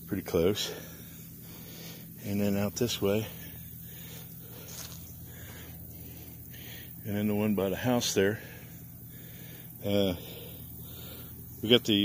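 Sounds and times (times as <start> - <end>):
steady low hum: 0.0 - 12.0
faint rustle: 0.9 - 7.0.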